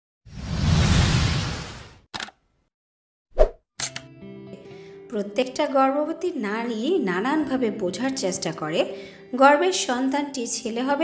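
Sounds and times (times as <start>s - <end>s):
sharp click: 2.1s - 2.4s, 3.8s - 4.1s
short click: 3.8s - 4.1s.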